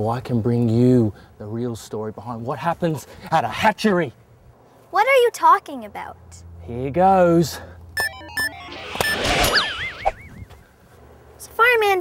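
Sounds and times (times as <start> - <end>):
noisy whoosh: 8.0 - 10.5
warbling electronic tone: 8.0 - 10.5.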